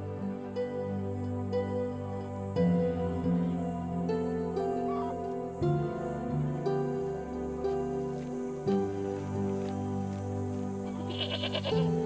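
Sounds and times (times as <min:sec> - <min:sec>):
soft background music: 0:00.0 - 0:12.0
goat bleating: 0:11.0 - 0:11.9.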